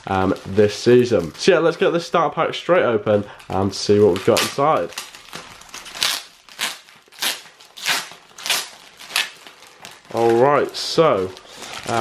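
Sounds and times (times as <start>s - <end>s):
foil packaging crinkling: 0.0s - 2.2s, 3.1s - 12.0s.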